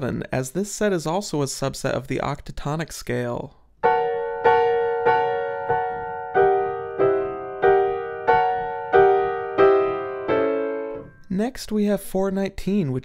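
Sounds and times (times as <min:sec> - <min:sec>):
piano chords: 0:03.8 - 0:11.3.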